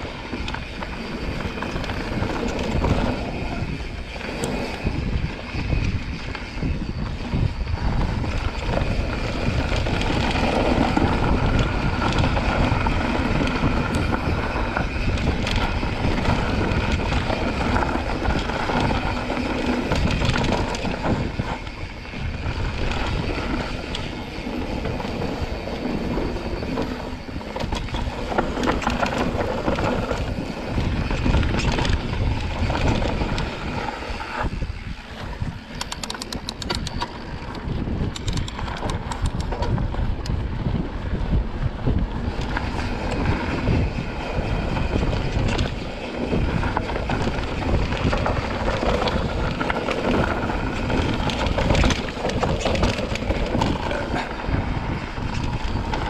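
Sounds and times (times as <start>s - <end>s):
bike rattling over bumps: 0.0s - 56.0s
tyres rushing on dirt: 0.0s - 56.0s
wind buffeting microphone: 0.0s - 56.0s.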